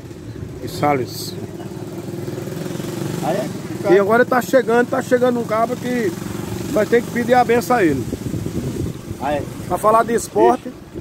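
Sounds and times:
motorcycle engine idling: 0:00.0 - 0:07.4.

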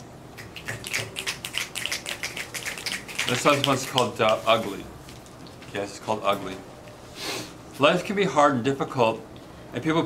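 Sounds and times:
audience finger-snapping: 0:00.4 - 0:04.5.

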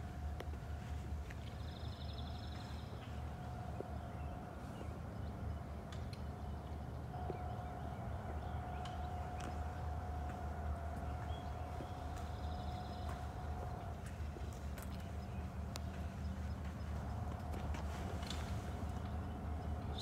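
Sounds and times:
faint hum: 0:00.0 - 0:20.0
low rumble: 0:07.0 - 0:20.0.

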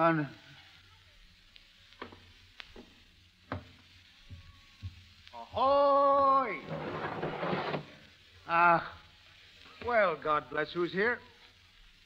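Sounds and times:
radio recording hiss: 0:00.0 - 0:12.0.

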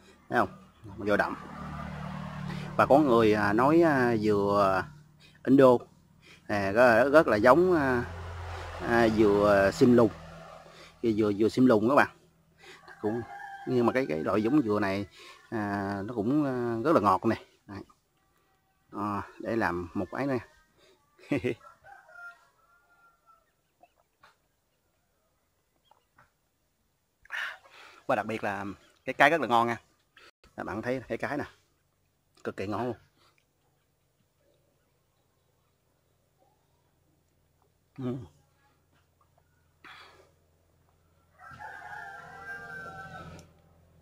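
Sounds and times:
rooster crowing: 0:12.7 - 0:15.5, 0:21.4 - 0:23.6, 0:41.2 - 0:43.6.

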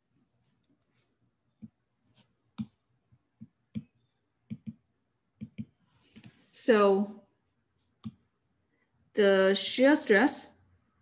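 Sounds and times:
stylus tapping on glass screen: 0:03.4 - 0:04.8, 0:05.4 - 0:05.8.

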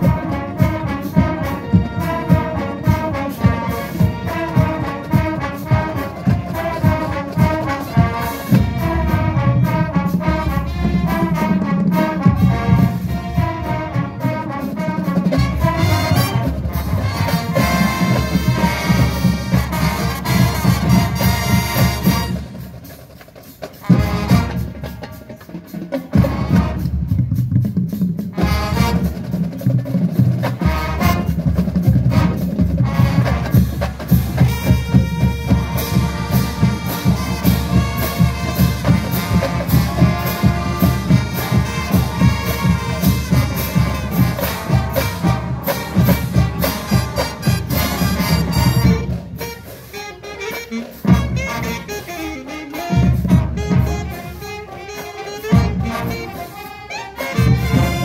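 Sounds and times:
marching band playing: 0:00.0 - 0:58.0
drum strikes: 0:23.6 - 0:49.6.

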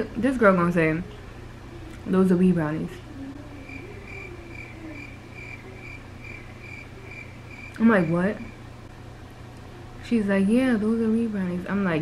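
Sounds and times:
faint low hum: 0:00.0 - 0:12.0
high-pitched chirping: 0:03.6 - 0:08.6.

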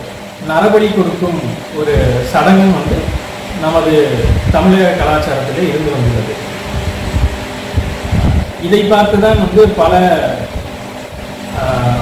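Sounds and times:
fan or air conditioner rumble: 0:00.0 - 0:12.0.

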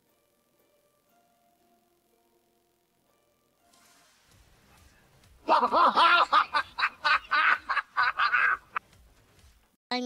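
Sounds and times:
person laughing: 0:05.4 - 0:08.8.

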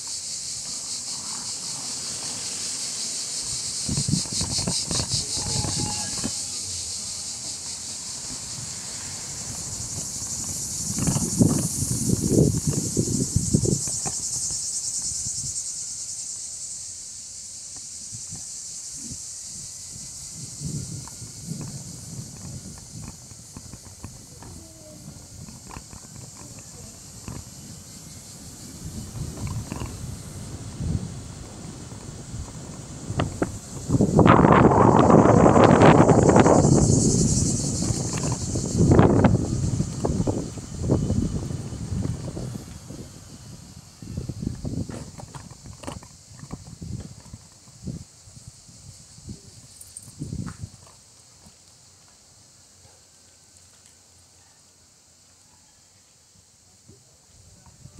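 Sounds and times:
cicadas buzzing: 0:00.0 - 0:57.9.

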